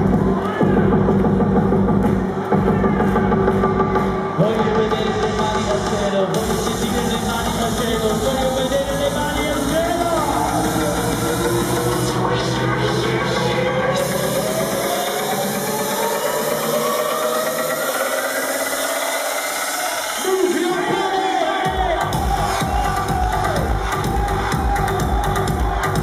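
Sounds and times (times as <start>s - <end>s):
house dance music over sound system: 0.0s - 26.0s
rising sweep: 6.4s - 20.3s.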